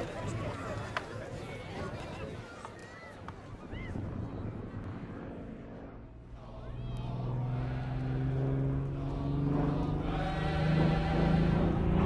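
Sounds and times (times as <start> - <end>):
propeller plane flying overhead: 4.4 - 12.0.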